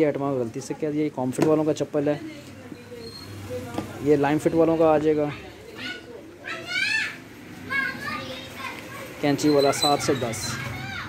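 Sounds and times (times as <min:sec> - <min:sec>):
child calling out: 0:10.4 - 0:11.0.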